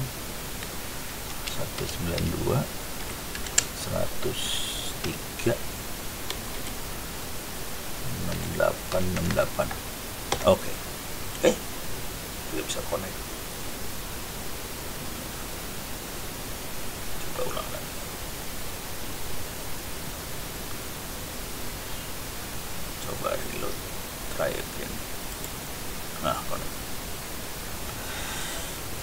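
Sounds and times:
background hiss: 0.0s - 29.0s
faint vocal sounds: 3.6s - 5.7s, 7.8s - 10.8s, 17.2s - 18.0s, 27.8s - 29.0s.

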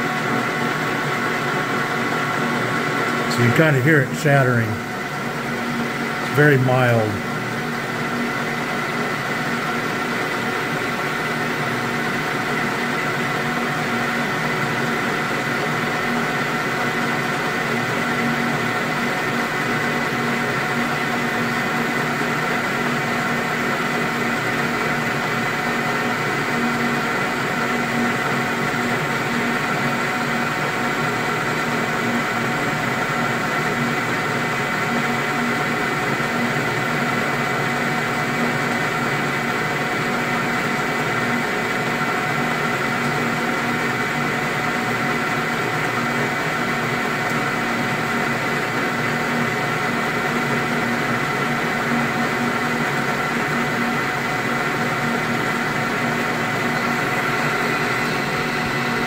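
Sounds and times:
metal lathe humming: 50.1s - 59.0s.

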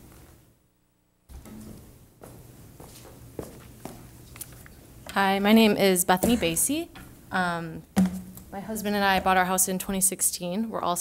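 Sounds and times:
footsteps: 1.3s - 4.8s
sharp knocks: 8.0s - 8.4s.

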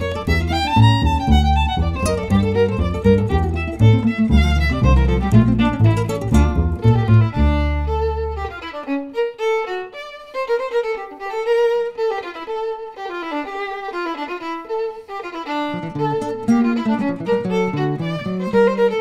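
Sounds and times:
low rhythm accompaniment: 0.0s - 9.0s
jazz violin melody: 0.0s - 19.0s.

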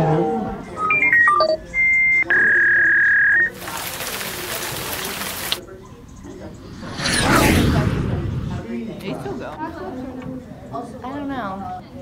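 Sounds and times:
held intercom beeps: 0.6s - 3.6s.

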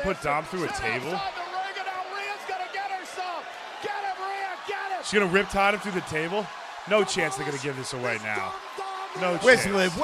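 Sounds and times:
hosts talking: 0.0s - 10.0s.

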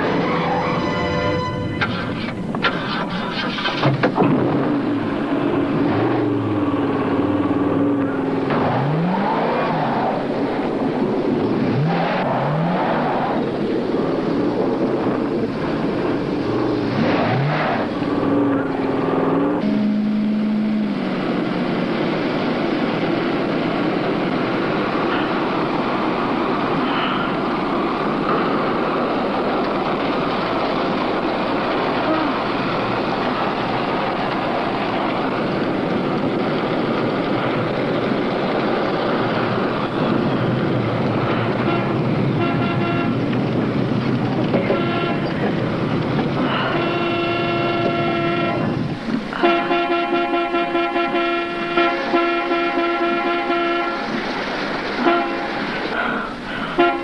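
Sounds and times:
car engine and tyre noise: 0.0s - 57.0s
car horn: 0.1s - 2.5s, 19.6s - 21.0s, 41.4s - 43.3s, 44.5s - 45.6s, 46.4s - 54.2s, 55.0s - 55.6s, 56.7s - 57.0s.

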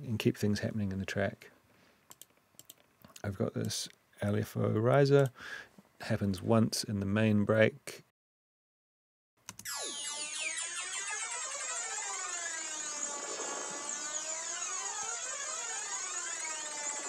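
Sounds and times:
synth riser sweeping up and down: 9.6s - 17.0s.

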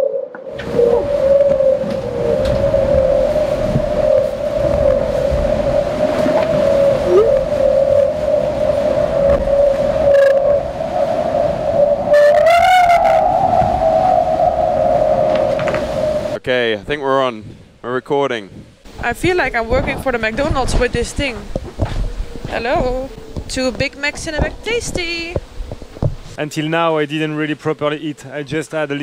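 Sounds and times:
singing whine from yacht hull: 0.0s - 16.4s, 21.0s - 25.9s
water rushing along hull: 0.0s - 16.9s, 18.8s - 26.8s.

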